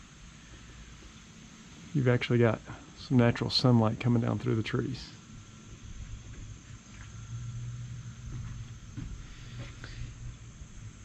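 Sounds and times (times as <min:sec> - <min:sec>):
insect drone: 0:00.0 - 0:11.0
low hum and rumble: 0:00.0 - 0:11.0.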